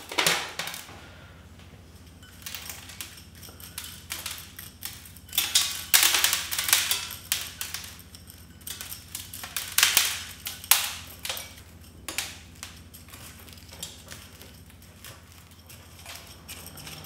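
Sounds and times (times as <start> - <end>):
metal tool scraping soil: 11.1 - 17.0.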